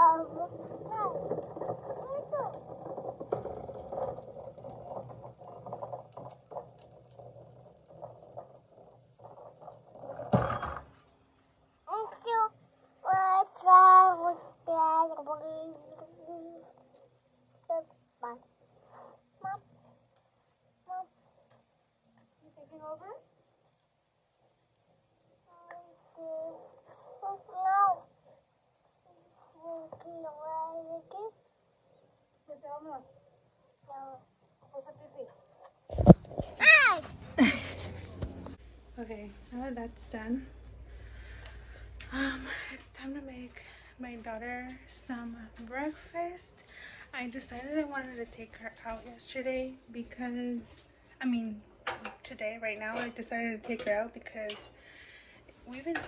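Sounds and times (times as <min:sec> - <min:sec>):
toddler making sing-song sounds: 0:11.9 - 0:16.7, 0:25.5 - 0:28.0, 0:29.3 - 0:31.4.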